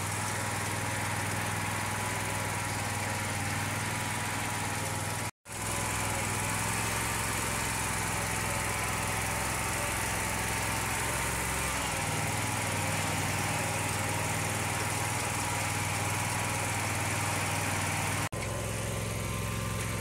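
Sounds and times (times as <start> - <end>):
mower engine droning: 0.0 - 20.0.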